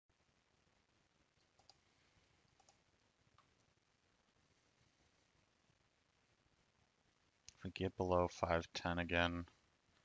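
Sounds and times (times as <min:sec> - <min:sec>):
faint room hiss: 0:00.1 - 0:10.0.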